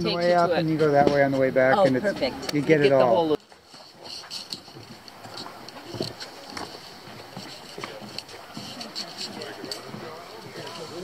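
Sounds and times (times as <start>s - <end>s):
footsteps on wooden boardwalk: 0.0s - 11.0s
people talking: 7.8s - 11.0s.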